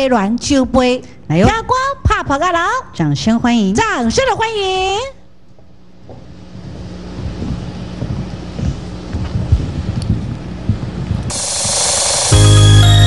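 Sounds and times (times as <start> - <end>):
bright hiss sweep: 11.3 - 13.0
music: 11.3 - 13.0.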